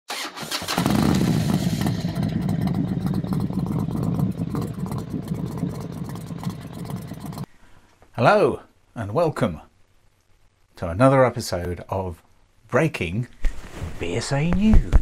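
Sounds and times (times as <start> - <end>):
motorcycle engine cranking and running: 0.1 - 7.5.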